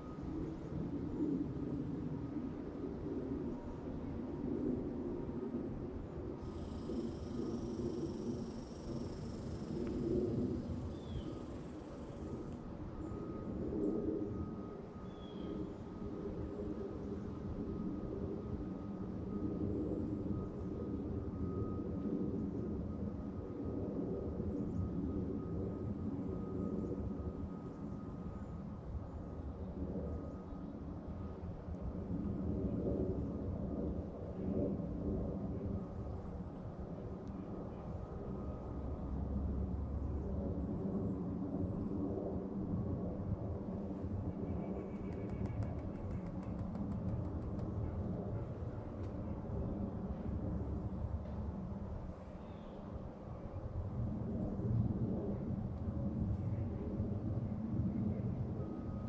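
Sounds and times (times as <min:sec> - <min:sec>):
distant engines droning: 0:00.0 - 0:59.0.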